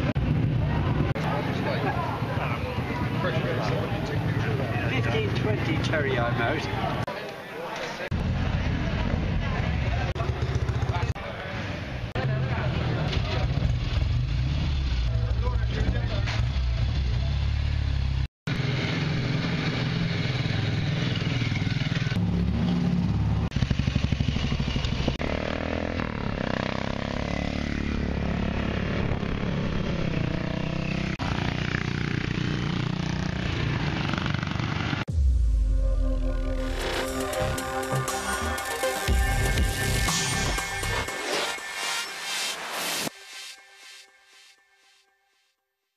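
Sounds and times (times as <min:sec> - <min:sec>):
motorcycle engines revving: 0:00.0 - 0:35.2
voices in the background: 0:00.6 - 0:13.7.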